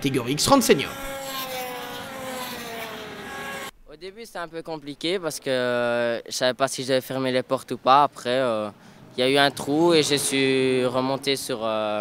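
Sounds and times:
kart engine passing at high revs: 0.1s - 3.8s.

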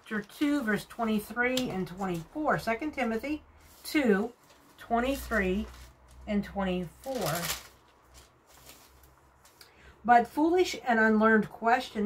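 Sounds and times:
thin pages rustling: 4.4s - 6.3s, 7.0s - 9.6s.

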